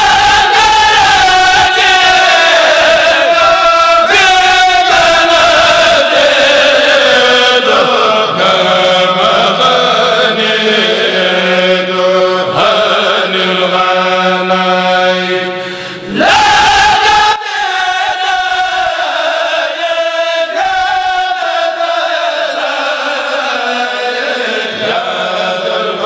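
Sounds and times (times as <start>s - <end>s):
men chanting together: 0.0s - 26.0s.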